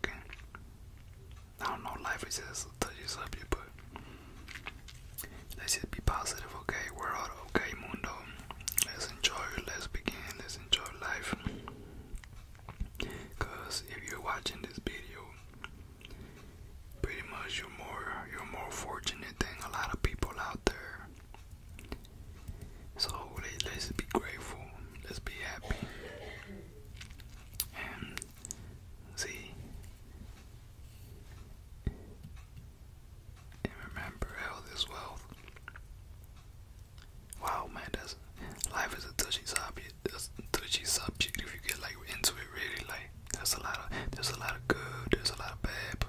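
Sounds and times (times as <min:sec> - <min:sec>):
person whispering: 0:00.0 - 0:00.5, 0:01.6 - 0:03.8, 0:05.2 - 0:11.8, 0:12.8 - 0:15.5, 0:17.0 - 0:21.3, 0:23.0 - 0:26.6, 0:27.6 - 0:29.7, 0:33.6 - 0:35.6, 0:37.3 - 0:46.0
chewing: 0:04.0 - 0:05.3, 0:08.5 - 0:09.0, 0:26.8 - 0:28.6, 0:35.3 - 0:35.9
wet mouth clicks: 0:08.5 - 0:09.0, 0:27.0 - 0:28.6.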